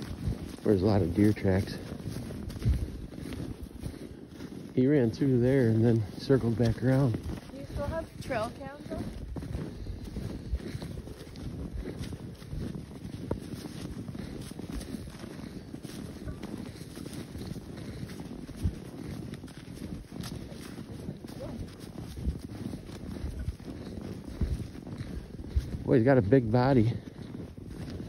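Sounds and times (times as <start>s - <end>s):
footsteps in snow: 0.0s - 28.0s
wind rumbling on microphone: 0.0s - 28.0s.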